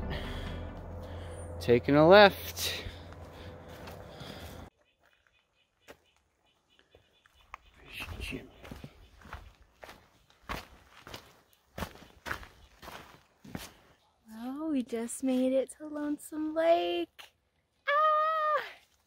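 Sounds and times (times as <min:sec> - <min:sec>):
footsteps on rocky trail: 0:02.6 - 0:14.0.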